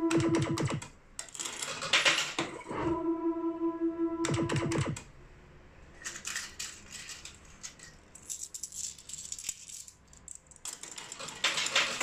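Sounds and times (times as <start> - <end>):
slot machine electronic tone: 0.0 - 0.8, 2.7 - 5.0
metal medals clattering: 6.0 - 12.0.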